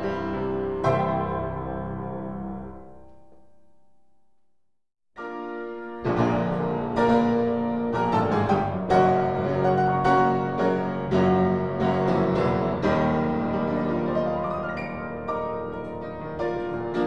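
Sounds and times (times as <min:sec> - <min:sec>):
upright piano chords and melody: 0:00.0 - 0:03.8, 0:05.2 - 0:17.0.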